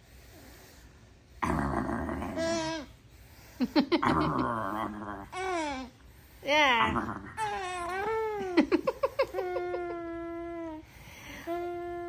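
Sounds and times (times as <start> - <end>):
infant vocalizing: 1.4 - 2.9, 4.1 - 6.0, 6.6 - 8.6.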